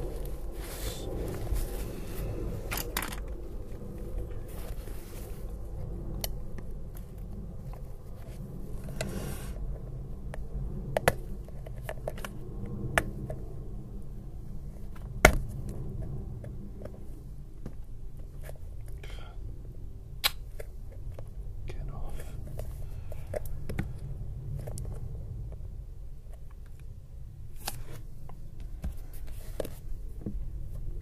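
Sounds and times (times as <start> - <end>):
steady low hum: 0.0 - 31.0
brush scraping on paper: 0.5 - 2.6.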